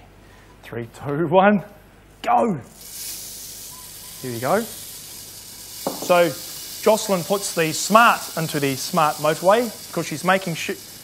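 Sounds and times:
rice grains pouring hiss: 2.7 - 11.0.

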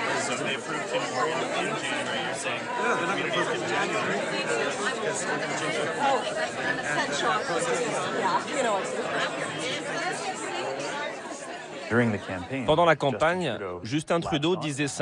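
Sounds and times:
crowd chatter: 0.0 - 15.0
man talking: 11.9 - 15.0.

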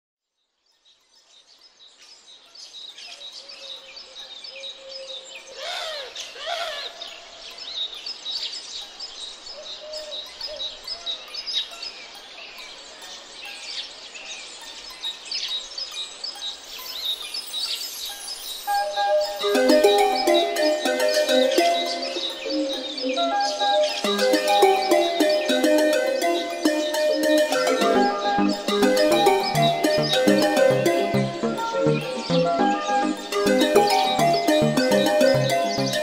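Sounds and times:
songbirds chirping and singing: 0.5 - 36.0.

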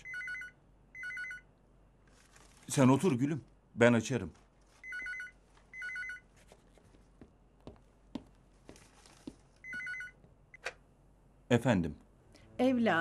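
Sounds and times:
electronic telephone trilling ring: 0.0 - 1.4, 4.8 - 6.2, 9.6 - 10.2.

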